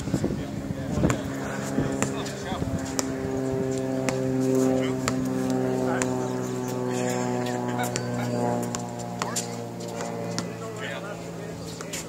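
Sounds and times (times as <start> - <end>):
low motor drone: 0.0 - 12.0
basketball bouncing on hard court: 4.0 - 4.2.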